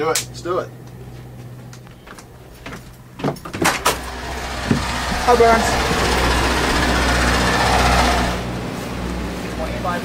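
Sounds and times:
low engine hum: 0:00.7 - 0:10.0
bus door clunks: 0:02.7 - 0:04.9.

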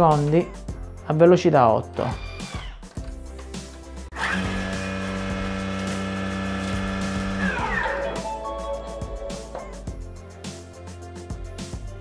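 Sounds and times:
food processor motor whining: 0:02.1 - 0:03.0, 0:04.1 - 0:08.2.

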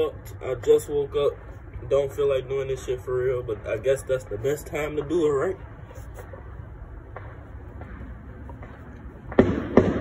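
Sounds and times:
low background rumble: 0:00.0 - 0:10.0
sharp bangs: 0:04.8 - 0:10.0.

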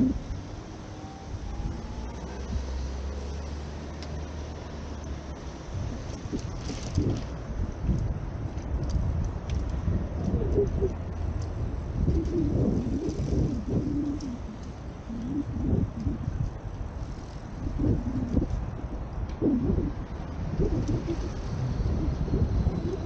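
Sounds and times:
wind buffeting microphone: 0:00.0 - 0:03.7, 0:04.4 - 0:23.0
faint road traffic: 0:00.0 - 0:23.0.

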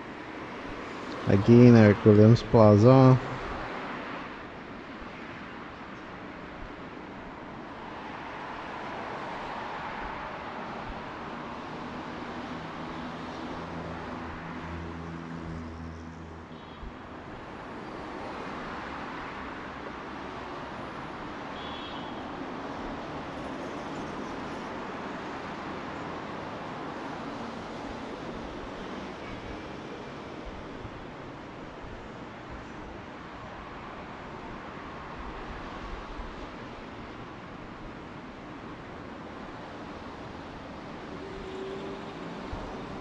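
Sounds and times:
road traffic passing: 0:00.0 - 0:43.0.

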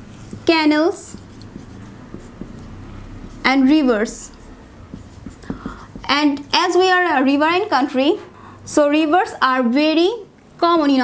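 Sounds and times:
marker writing on whiteboard: 0:00.0 - 0:06.9
low steady hum: 0:00.0 - 0:10.6.

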